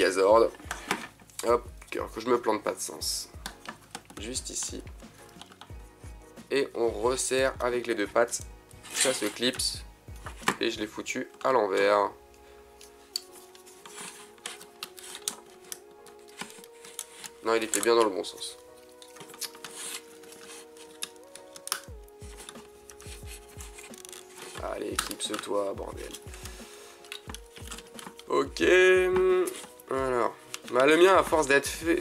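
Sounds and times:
soft background music: 0.0s - 32.0s.

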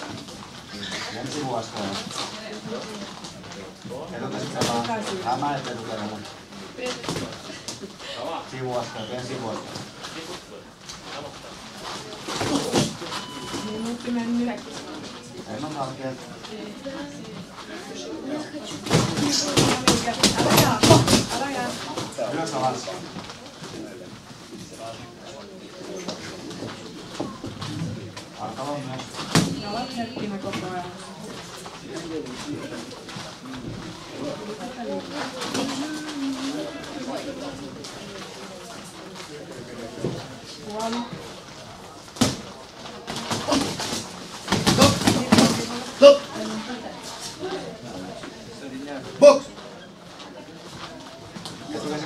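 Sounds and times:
faint indistinct voices: 0.0s - 52.0s.

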